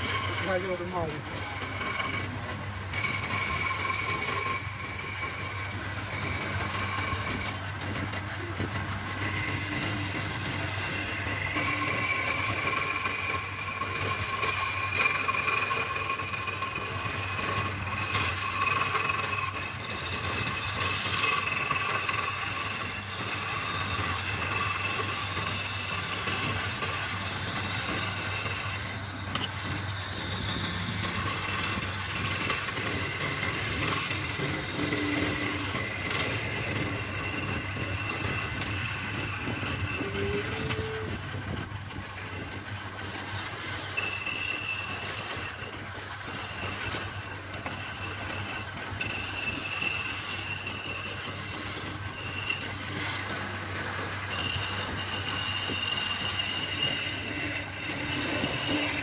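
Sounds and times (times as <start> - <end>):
scraping tool rasping on wood: 0.0 - 41.2, 46.6 - 59.0
wood lathe humming and whining: 0.0 - 59.0.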